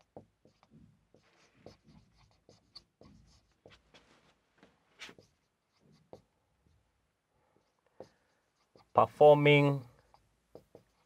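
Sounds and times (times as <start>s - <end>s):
marker pen on whiteboard: 0.0s - 11.0s.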